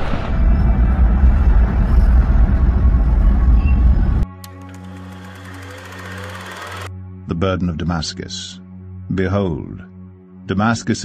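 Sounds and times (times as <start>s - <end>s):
deep rumble of eruption: 0.0s - 4.2s
low ambient music drone: 0.0s - 10.5s.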